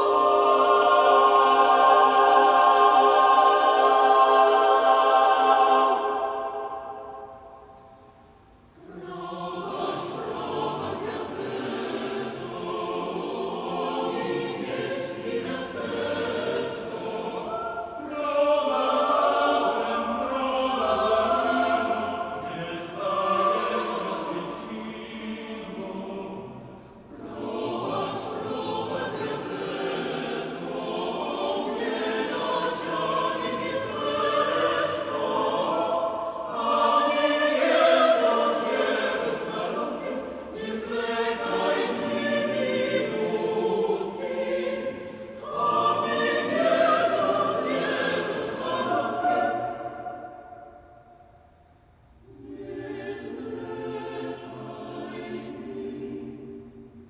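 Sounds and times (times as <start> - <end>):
mixed choir singing a carol: 0.0 - 57.0.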